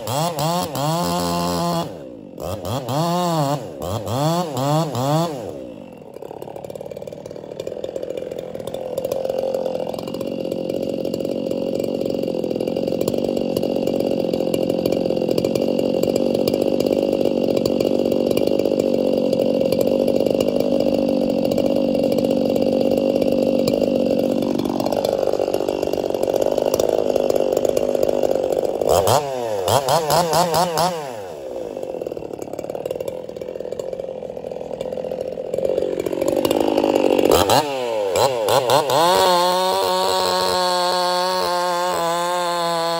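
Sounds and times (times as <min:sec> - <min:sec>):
chainsaw idling and revving: 0:00.0 - 0:42.9.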